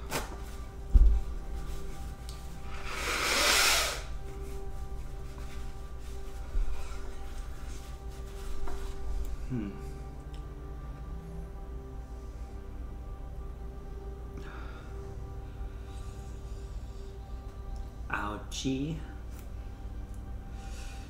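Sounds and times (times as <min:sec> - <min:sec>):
sniffs and wipes: 0:01.6 - 0:10.0
man blowing his nose: 0:02.7 - 0:04.3.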